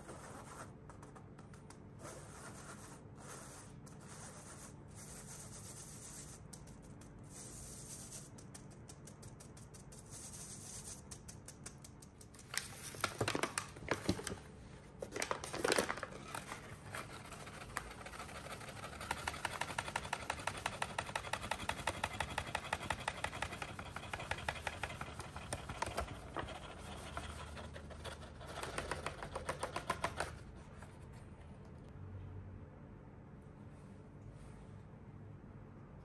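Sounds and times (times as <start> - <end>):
parchment paper crackling: 4.0 - 30.4.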